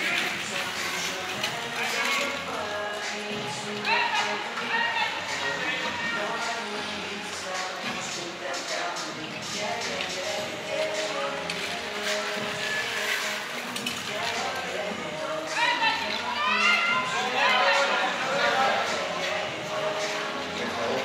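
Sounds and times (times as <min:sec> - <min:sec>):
background music: 0:00.0 - 0:21.0
indistinct voices: 0:00.0 - 0:21.0.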